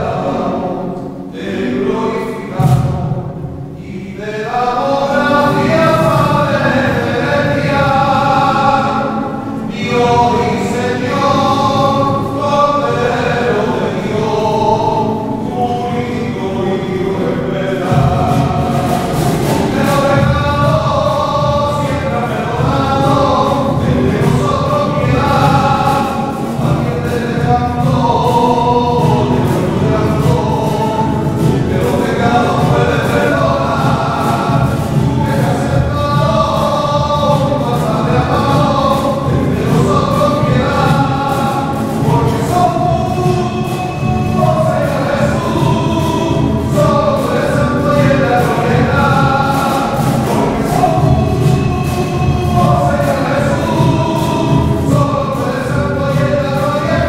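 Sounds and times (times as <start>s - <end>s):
group of voices singing: 0.0s - 57.0s
strummed acoustic guitars: 0.0s - 57.0s.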